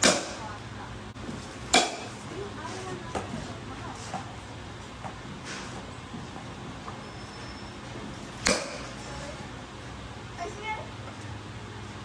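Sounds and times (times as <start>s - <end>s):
baseball bat hitting ball: 0.0s - 0.6s, 1.2s - 2.3s, 8.2s - 9.0s.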